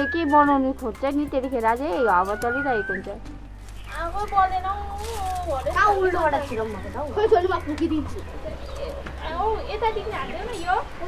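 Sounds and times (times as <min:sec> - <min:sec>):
women talking and exclaiming: 0:00.0 - 0:11.0.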